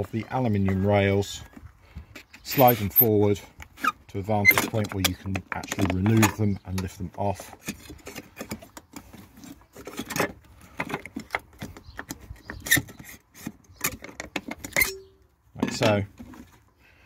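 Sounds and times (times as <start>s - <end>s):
metal seat rails clicking and rattling: 2.5s - 16.1s.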